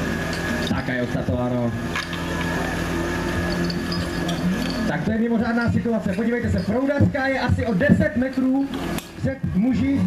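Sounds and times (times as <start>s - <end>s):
fire pump engine running: 0.0s - 10.0s.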